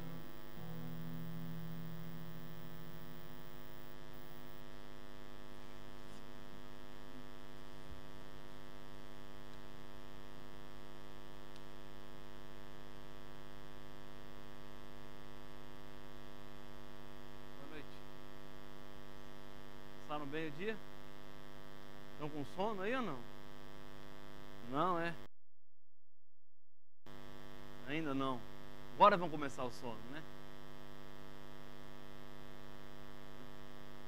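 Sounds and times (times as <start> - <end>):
low held tone: 0.0 - 4.6
electrical mains hum: 0.0 - 25.3.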